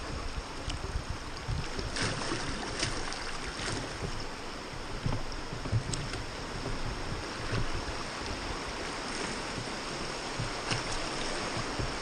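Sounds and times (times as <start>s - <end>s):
oar splashes: 0.0s - 12.0s
river water rushing: 0.0s - 12.0s
wind rumbling on microphone: 0.0s - 12.0s.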